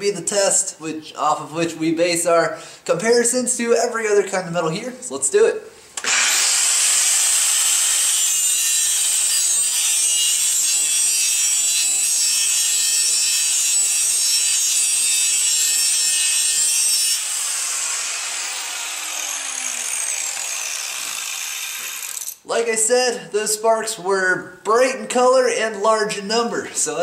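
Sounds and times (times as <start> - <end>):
angle grinder grinding steel: 6.0 - 22.4.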